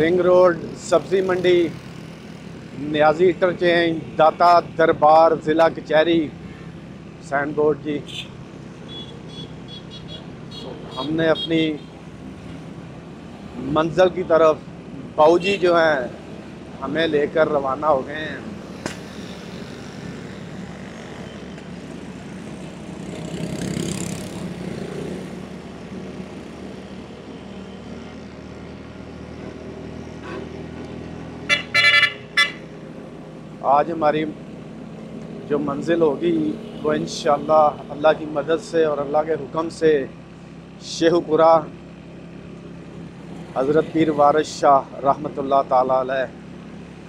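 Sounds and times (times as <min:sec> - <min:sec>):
car engine and road rumble: 0:00.0 - 0:47.0
vehicle horn toots: 0:08.1 - 0:08.3, 0:08.9 - 0:11.9, 0:15.4 - 0:15.7, 0:31.5 - 0:32.6.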